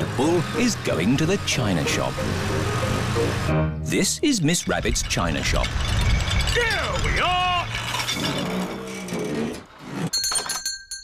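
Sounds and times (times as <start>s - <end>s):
shop doorbell ringing: 10.1s - 11.0s.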